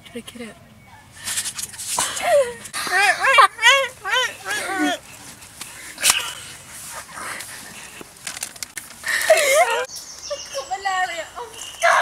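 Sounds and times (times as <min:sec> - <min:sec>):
high-pitched squealing laughter: 0:02.0 - 0:05.1, 0:09.1 - 0:10.7.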